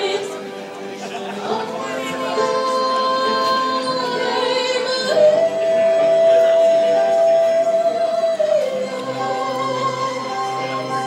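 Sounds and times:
music: 0.0s - 11.0s
woman singing long held notes: 1.6s - 11.0s.

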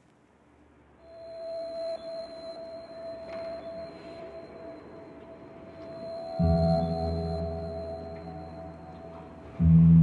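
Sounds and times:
faint high tone: 1.0s - 9.6s
sustained synth tone: 1.0s - 10.0s.

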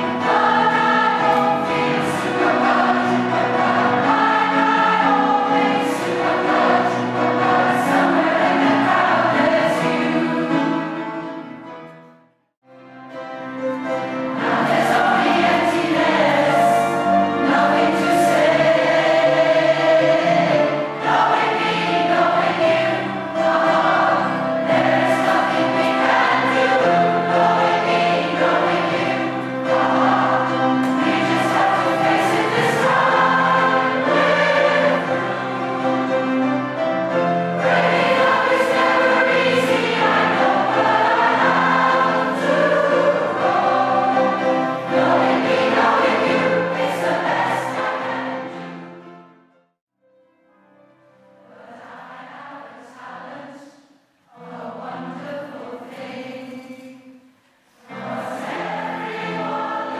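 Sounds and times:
choir singing: 0.0s - 11.7s, 13.8s - 49.1s, 51.4s - 59.9s.

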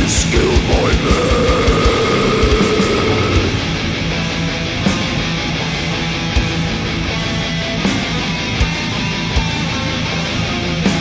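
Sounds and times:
distorted metal guitars: 0.0s - 11.0s.

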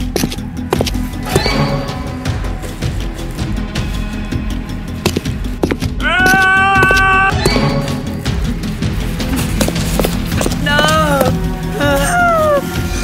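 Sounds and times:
film soundtrack music: 0.0s - 13.0s
man wailing: 6.0s - 7.3s
high held cry: 6.0s - 7.4s, 10.7s - 12.8s.

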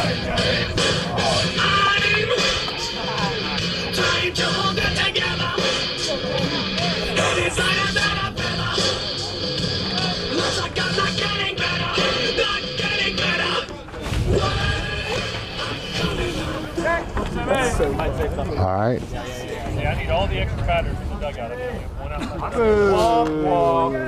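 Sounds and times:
rock song over loudspeakers: 0.0s - 16.5s
wind rumble on microphone: 16.0s - 23.1s.

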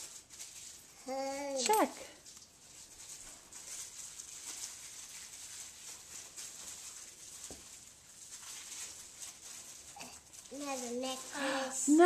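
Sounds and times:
fabric stocking rustling: 0.0s - 12.0s.

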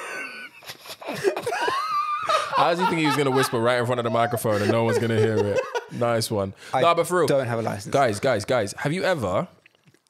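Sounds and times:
people wheezing laughter: 0.0s - 6.0s.

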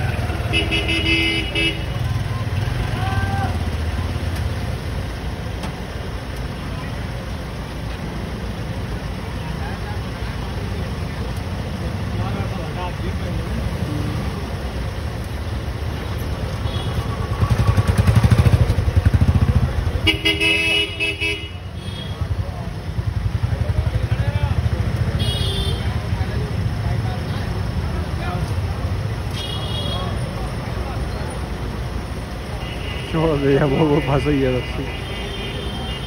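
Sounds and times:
vehicle engine rumbling: 0.0s - 36.0s.

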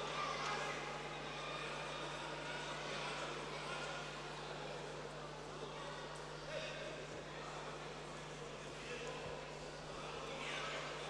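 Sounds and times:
faint indistinct voices: 0.0s - 11.0s.

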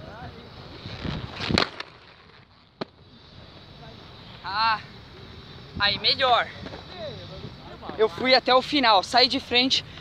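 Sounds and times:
skate wheels rolling: 0.0s - 10.0s.

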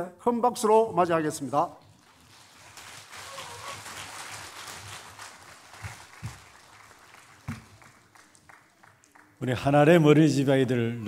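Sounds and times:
congregation applauding: 1.8s - 9.4s.

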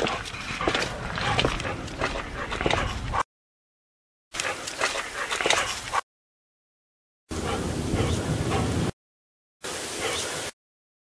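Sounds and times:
crunching footsteps: 0.0s - 3.2s.

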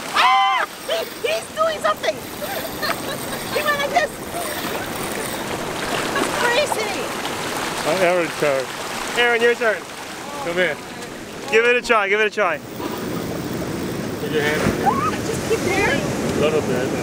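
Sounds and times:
people crying out excitedly: 0.0s - 5.0s, 14.7s - 15.4s
surf: 0.0s - 17.0s
wind: 0.0s - 17.0s
people laughing: 2.2s - 5.2s.

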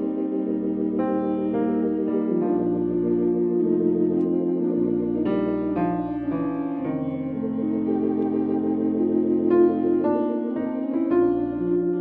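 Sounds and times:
organ chords: 0.0s - 12.0s.

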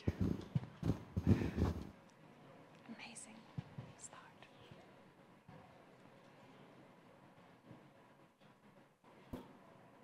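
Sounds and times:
faint whispering: 2.8s - 5.0s.

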